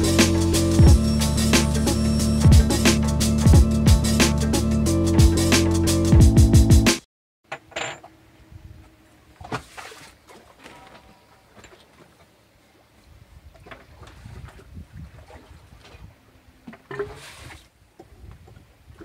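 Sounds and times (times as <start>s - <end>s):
low rumble of wind and sea: 8.2s - 19.0s.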